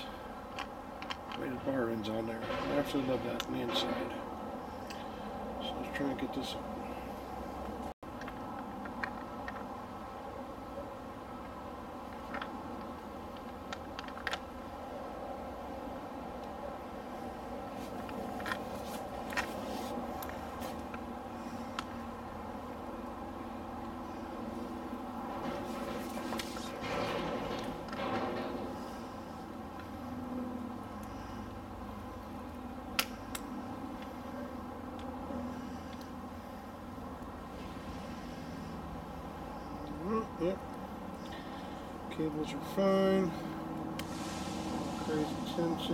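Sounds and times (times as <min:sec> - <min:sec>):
steady background hum: 0:00.0 - 0:45.9
metal clicks and knocks: 0:25.3 - 0:29.0.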